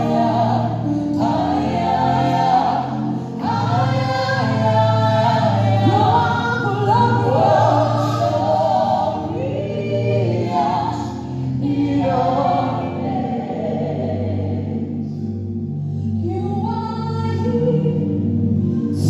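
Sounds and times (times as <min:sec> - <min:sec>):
backing singers: 0:00.0 - 0:14.9
woman singing lead: 0:00.0 - 0:15.1, 0:16.2 - 0:19.0
bass: 0:00.0 - 0:19.0.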